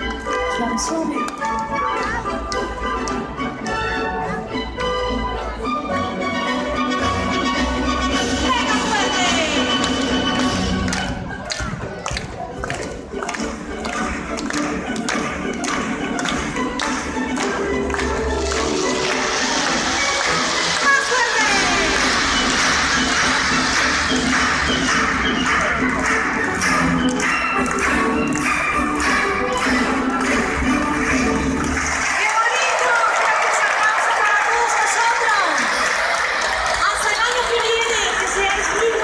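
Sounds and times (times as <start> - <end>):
loud music: 0.0 - 11.4, 13.0 - 32.5.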